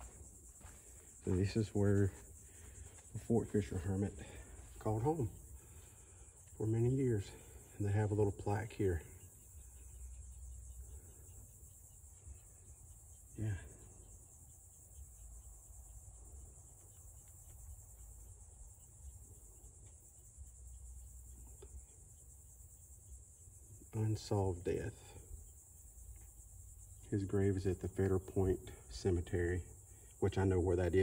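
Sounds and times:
insects buzzing: 0:00.0 - 0:31.0.

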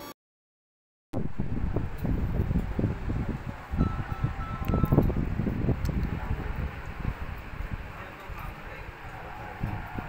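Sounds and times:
low rumble with rustling: 0:01.2 - 0:10.0.

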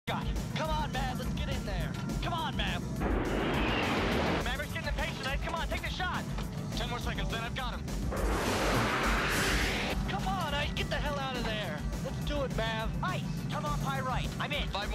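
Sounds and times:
film score music: 0:00.1 - 0:14.9
jet engine rush: 0:03.0 - 0:04.4, 0:08.0 - 0:10.0.

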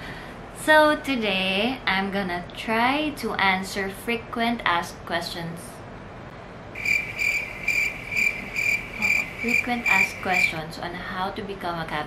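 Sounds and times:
cricket chirping: 0:06.8 - 0:10.5.

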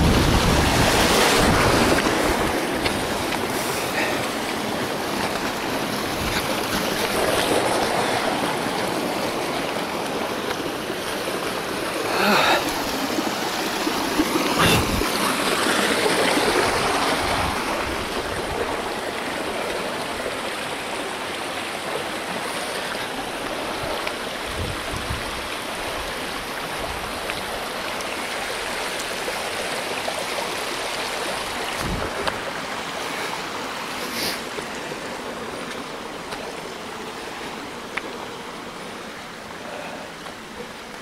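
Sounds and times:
rushing water-like noise: 0:00.0 - 0:41.0.

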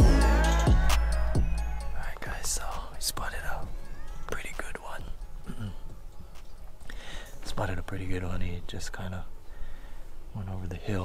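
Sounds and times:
music: 0:00.0 - 0:09.6
man whispering: 0:01.9 - 0:03.7, 0:04.3 - 0:05.9, 0:10.3 - 0:11.0.

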